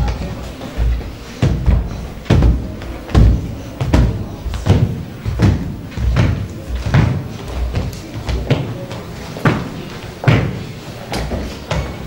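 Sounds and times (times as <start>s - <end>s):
footsteps stamping on wooden floor: 0.0s - 12.0s.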